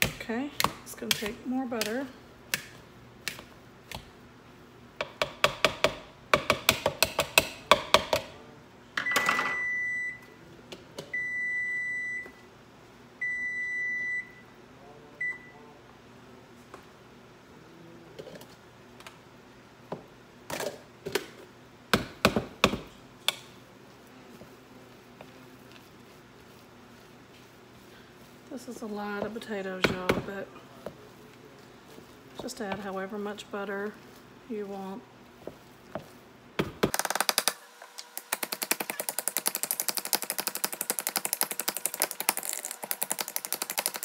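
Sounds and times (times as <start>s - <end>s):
potatoes being mashed in a bowl: 0.0s - 4.2s, 22.0s - 44.0s
microwave oven beeping: 9.0s - 10.4s, 11.1s - 12.5s, 13.2s - 14.6s.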